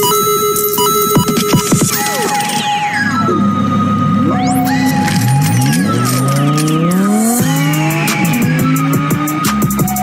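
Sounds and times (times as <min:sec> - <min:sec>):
music: 0:00.0 - 0:10.0
car engine accelerating: 0:02.4 - 0:10.0.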